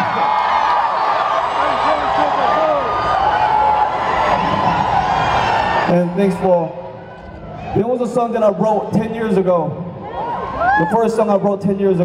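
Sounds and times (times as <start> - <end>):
high held screams: 0.0 - 6.0
concert crowd cheering: 0.0 - 12.0.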